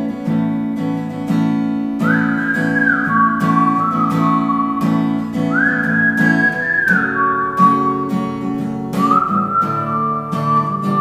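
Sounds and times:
strummed acoustic guitar: 0:00.0 - 0:11.0
whistled melody: 0:02.0 - 0:11.0.

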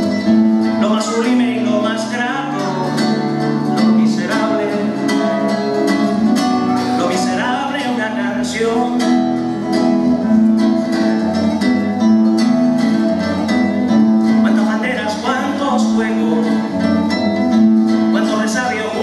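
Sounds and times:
acoustic guitar strumming and plucking: 0:00.0 - 0:19.0.

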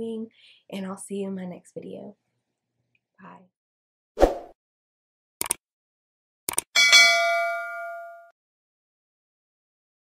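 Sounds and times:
bright bell ding: 0:06.8 - 0:08.4.

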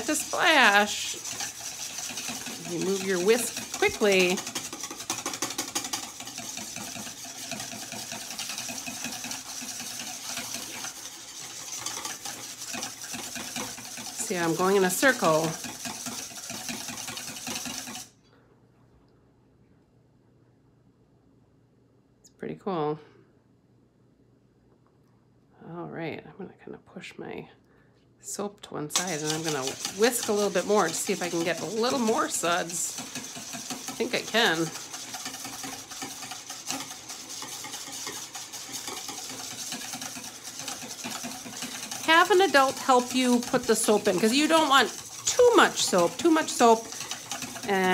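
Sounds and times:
whisk swishing in soapy water: 0:00.0 - 0:18.2, 0:28.9 - 0:47.9.

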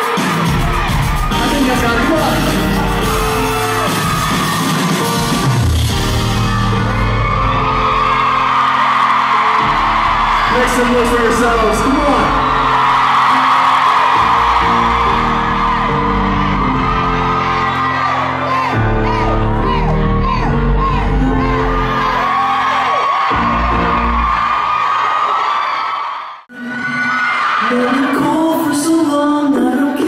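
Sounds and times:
crowd screaming and cheering: 0:00.0 - 0:30.0
loud concert music: 0:00.0 - 0:30.0.

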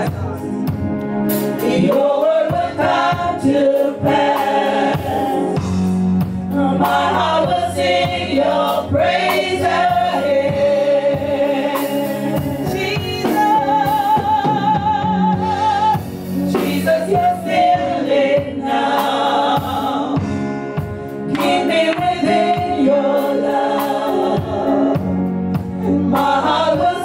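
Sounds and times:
steady low backing music: 0:00.0 - 0:27.0
women singing gospel song: 0:01.6 - 0:20.5, 0:21.2 - 0:27.0.

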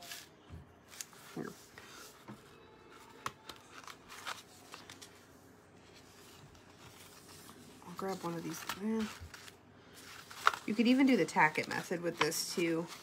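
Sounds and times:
vinyl sheet rustling: 0:00.0 - 0:13.0.

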